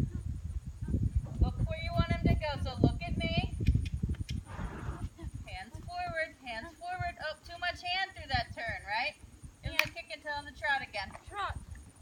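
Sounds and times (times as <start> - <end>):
horse hooves thudding in sand: 0.0 - 12.0
sharp click: 9.8 - 10.0.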